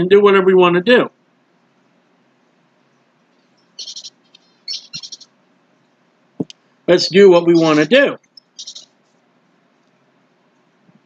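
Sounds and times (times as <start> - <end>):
small bird chirping: 2.8 - 9.0.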